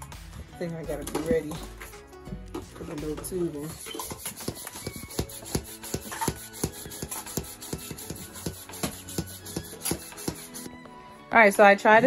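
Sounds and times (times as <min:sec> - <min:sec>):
plastic hand pump strokes: 0:03.7 - 0:10.7.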